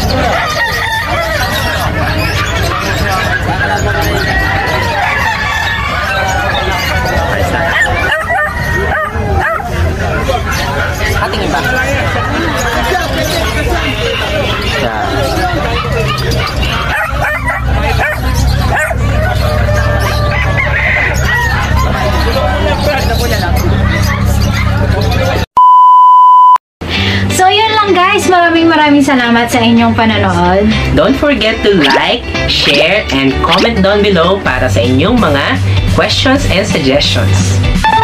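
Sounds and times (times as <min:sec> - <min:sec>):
dog yipping: 0:00.0 - 0:13.6, 0:14.5 - 0:25.4
people chattering: 0:00.0 - 0:25.5
electronic beep: 0:25.6 - 0:26.6
background music: 0:26.8 - 0:38.0
man and woman talking: 0:29.6 - 0:37.6.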